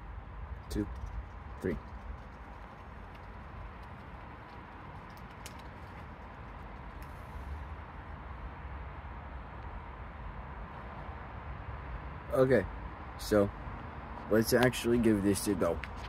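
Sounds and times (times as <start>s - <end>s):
faint clicks: 3.0s - 6.1s.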